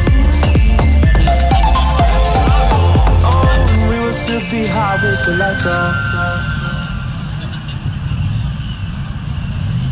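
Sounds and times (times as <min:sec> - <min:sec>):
street traffic rumble: 0:00.0 - 0:09.9.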